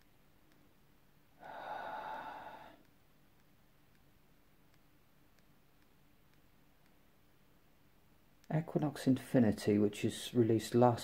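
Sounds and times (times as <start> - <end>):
person sighing: 1.4 - 2.8.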